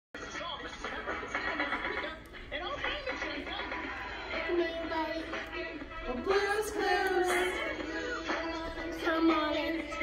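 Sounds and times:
sing-along song from small speaker: 0.2s - 10.0s.

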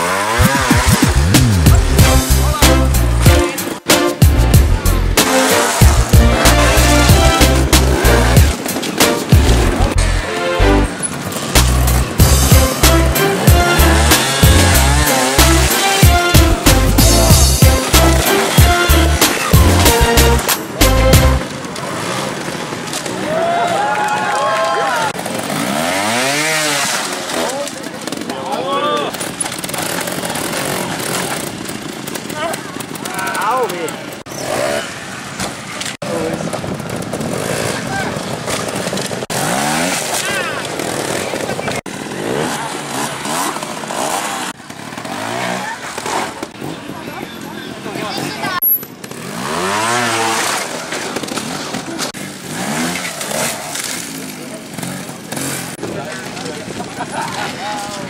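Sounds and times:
motorcycle engines revving: 0.0s - 58.0s.

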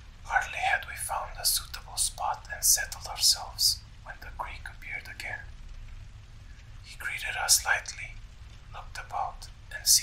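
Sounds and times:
low background hum: 0.0s - 10.0s
man whispering: 0.2s - 5.6s, 6.8s - 10.0s.

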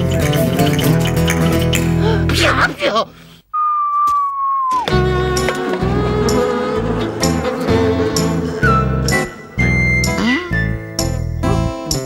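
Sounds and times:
long steady whistled note: 3.5s - 5.1s
warbling whistle: 3.6s - 5.0s
background music: 4.8s - 12.0s.

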